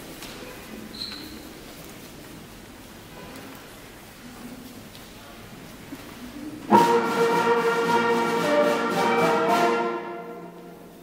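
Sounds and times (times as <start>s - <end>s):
wind band with brass: 6.7s - 11.0s.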